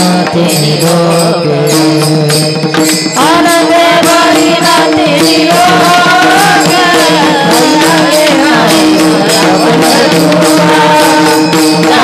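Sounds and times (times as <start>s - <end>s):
hand cymbals in steady beat: 0.0s - 12.0s
women singing in chorus: 3.2s - 12.0s.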